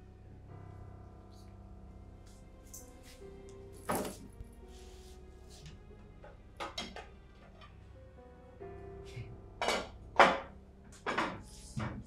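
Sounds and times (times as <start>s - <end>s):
soft background music: 0.0s - 12.0s
kitchenware clinking and knocking: 9.6s - 12.0s.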